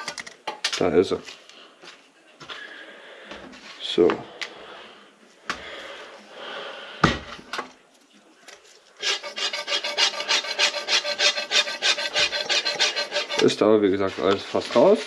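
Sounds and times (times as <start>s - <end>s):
fast rhythmic scraping: 9.0s - 15.0s.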